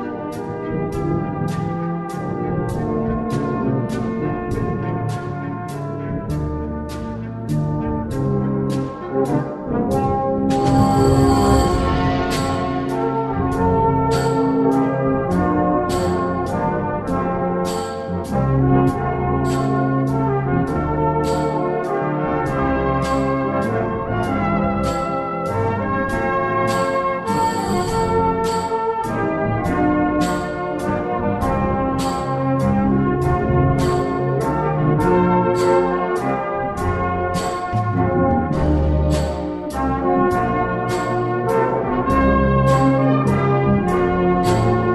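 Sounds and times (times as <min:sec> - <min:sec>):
brass band music: 0:00.0 - 0:44.9
crisp ticking beat: 0:00.4 - 0:16.6.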